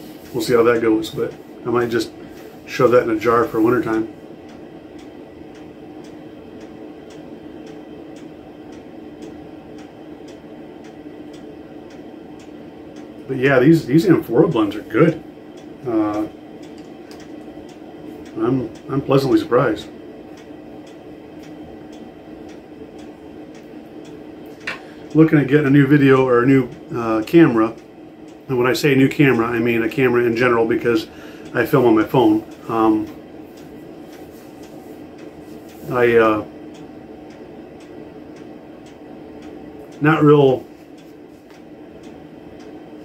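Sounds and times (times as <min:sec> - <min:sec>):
low room hum: 0:00.0 - 0:43.0.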